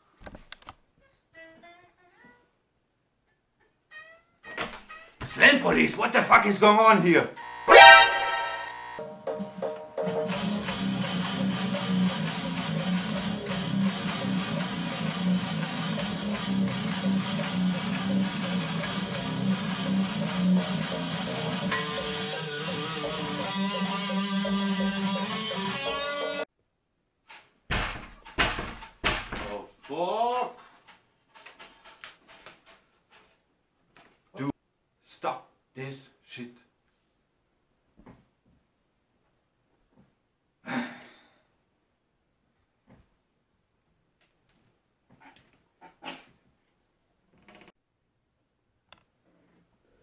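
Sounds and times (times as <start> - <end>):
electric guitar metal riff: 7.7 - 8.8, 12.6 - 26.4
short rising squeak: 7.7 - 8.8.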